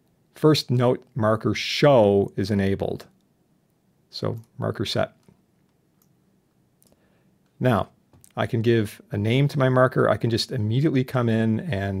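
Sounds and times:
faint mouse clicks: 5.2s - 6.2s, 6.8s - 8.4s.

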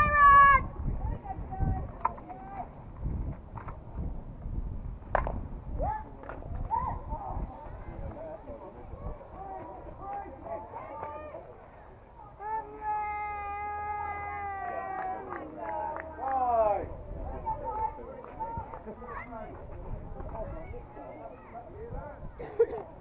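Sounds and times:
players shouting: 12.2s - 16.9s.

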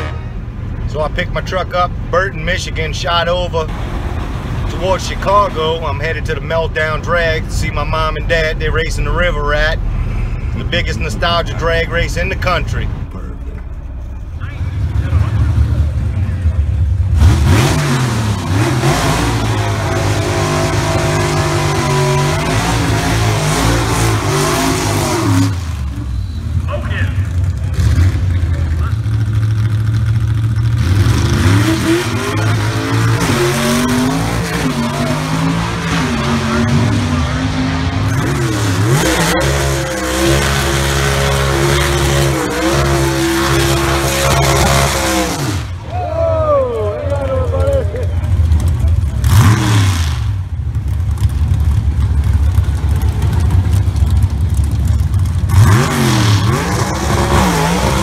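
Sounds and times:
race car engines revving: 0.0s - 58.0s
voices: 4.6s - 16.9s, 26.0s - 29.1s, 41.5s - 49.3s.

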